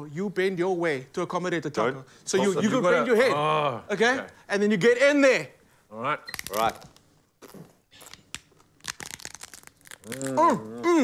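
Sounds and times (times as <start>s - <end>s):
people chewing crunchy tacos: 7.4s - 11.0s.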